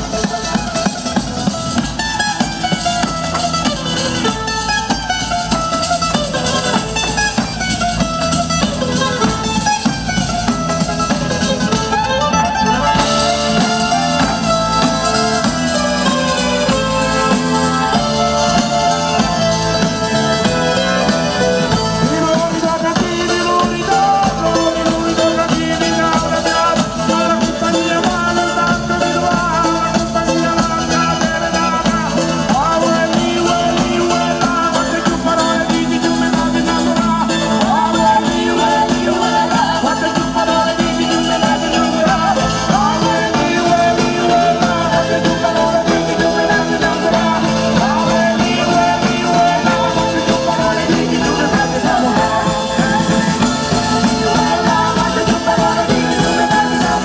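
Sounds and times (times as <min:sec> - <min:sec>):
folk band playing: 0:00.0 - 0:57.0
frame drum: 0:00.0 - 0:57.0
woman singing: 0:12.8 - 0:57.0.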